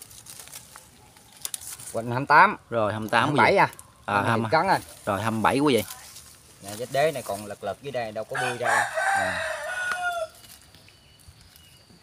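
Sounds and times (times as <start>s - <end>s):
rooster crowing: 8.3s - 10.5s.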